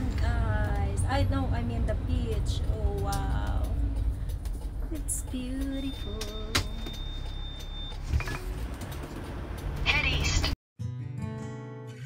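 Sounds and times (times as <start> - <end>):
car road noise rumble: 0.0 - 10.6.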